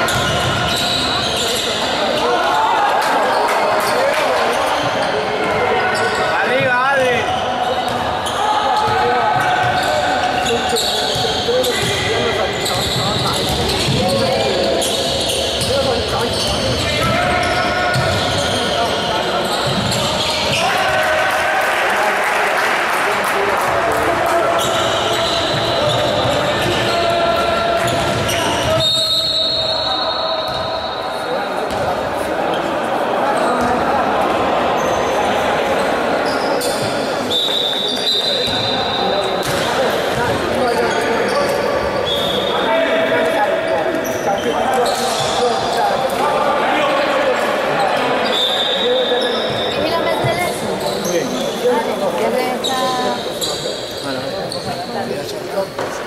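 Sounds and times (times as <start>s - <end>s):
shoe squeaks: 0.0s - 2.2s, 7.2s - 20.8s, 24.6s - 31.8s, 36.2s - 42.8s, 43.8s - 46.1s, 47.8s - 55.8s
players shouting: 15.9s - 31.6s.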